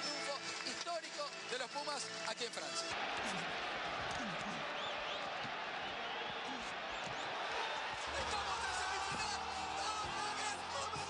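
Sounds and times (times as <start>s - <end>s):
crowd shouting and cheering: 2.9s - 11.0s.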